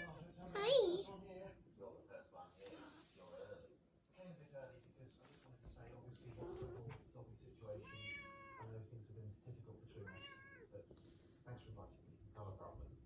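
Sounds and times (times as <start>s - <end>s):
cat meowing: 7.8s - 8.6s, 10.1s - 10.7s.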